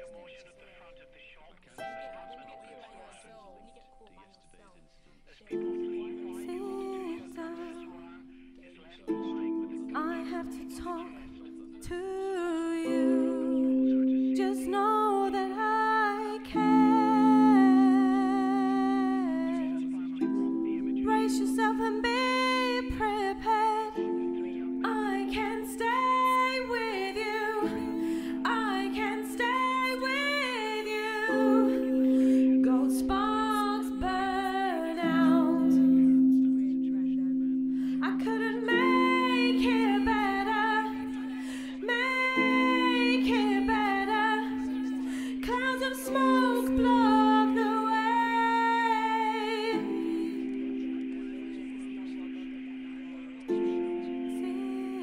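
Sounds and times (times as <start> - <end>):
sustained low tone: 5.4 - 55.0.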